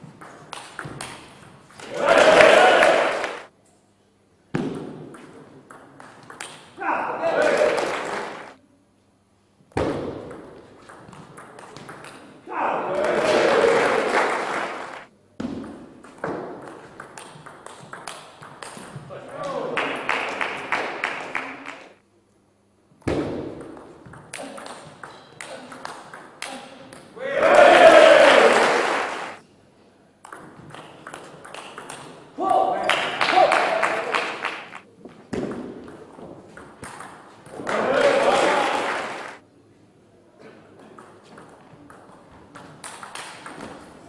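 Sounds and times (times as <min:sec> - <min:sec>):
spectators clapping: 0:01.8 - 0:03.5, 0:07.2 - 0:08.6, 0:12.8 - 0:15.1, 0:19.4 - 0:22.0, 0:27.4 - 0:29.4, 0:32.8 - 0:34.9, 0:37.6 - 0:39.4
spectators shouting: 0:01.8 - 0:03.5, 0:12.5 - 0:14.3, 0:27.2 - 0:29.4, 0:37.7 - 0:39.4.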